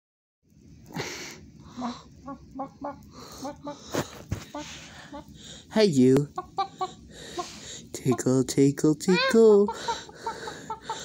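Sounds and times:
chicken clucking: 1.8s - 5.4s, 6.2s - 8.5s.

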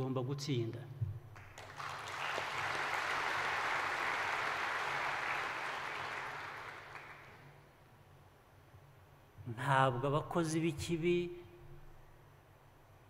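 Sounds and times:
audience applauding: 1.4s - 7.5s.

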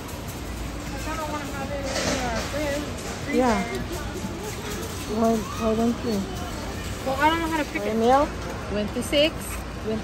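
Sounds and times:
low background store hum: 0.0s - 10.0s
people talking: 0.5s - 10.0s.

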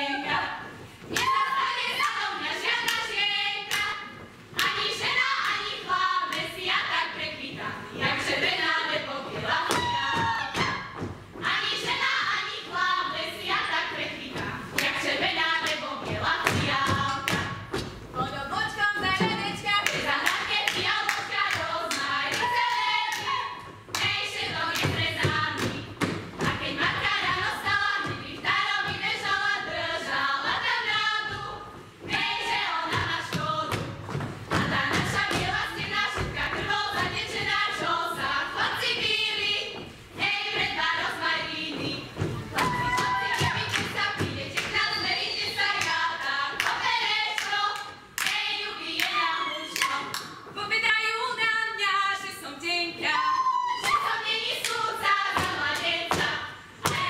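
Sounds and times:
women singing unaccompanied: 0.0s - 57.0s
boots stamping on stage floor: 9.7s - 11.6s.

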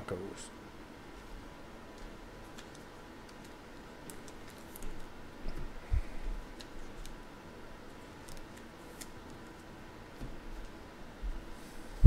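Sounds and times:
trading cards handling noise: 1.9s - 5.7s, 6.3s - 7.2s, 7.9s - 10.8s.

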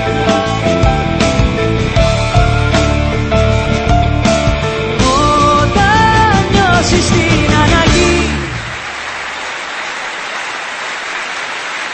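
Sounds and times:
concert audience applauding: 7.8s - 11.9s.

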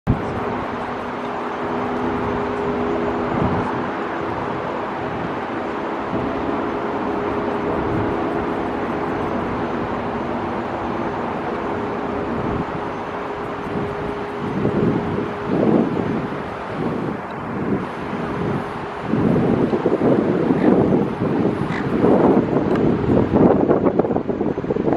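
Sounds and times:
jet engine rushing noise: 0.1s - 24.9s
steady low hum: 0.1s - 24.9s.

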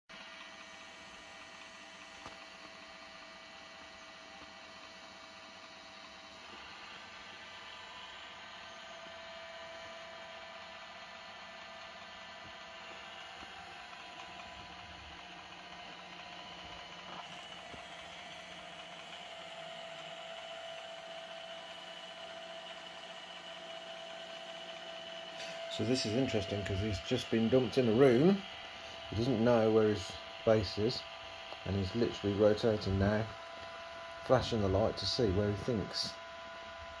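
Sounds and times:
robot vacuum motor whine: 0.1s - 37.0s.

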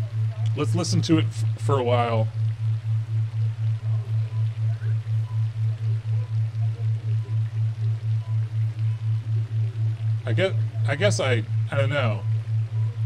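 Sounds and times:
faint scattered sounds: 0.0s - 13.0s
low pulsing tone: 0.0s - 13.0s.

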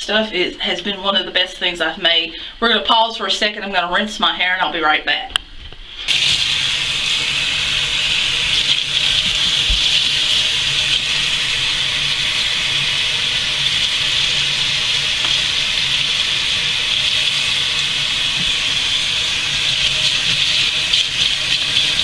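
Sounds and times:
faucet water running into sink: 6.1s - 22.0s.

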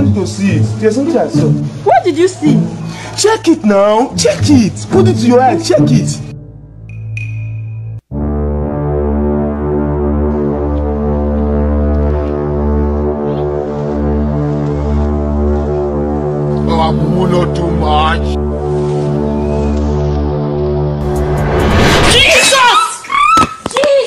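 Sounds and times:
deep horn-like drone: 8.1s - 21.6s.

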